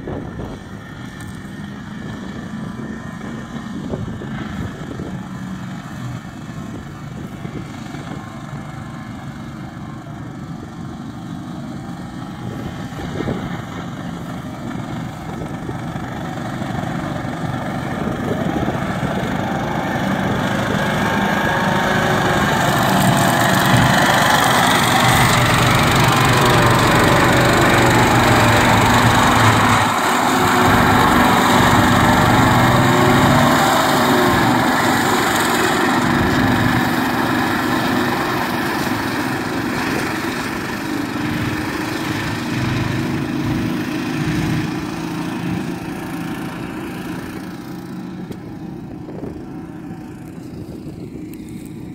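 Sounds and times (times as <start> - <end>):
flail mower rotor: 0.0 - 51.9
quad bike engine running: 0.0 - 51.9.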